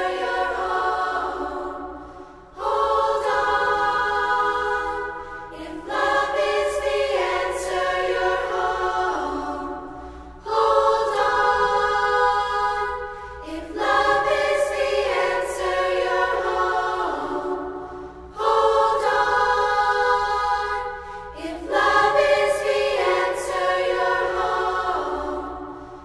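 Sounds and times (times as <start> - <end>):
choir singing long held chords: 0.0 - 26.0
low steady drone: 0.0 - 26.0.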